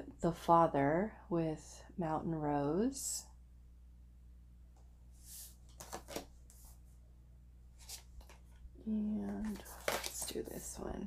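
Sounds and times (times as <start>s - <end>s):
faint steady hum: 0.0s - 11.0s
cards sliding together: 5.2s - 6.7s.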